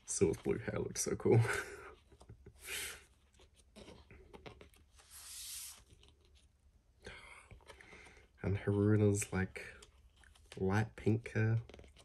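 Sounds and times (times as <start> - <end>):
faint breathy sound: 7.0 - 8.4.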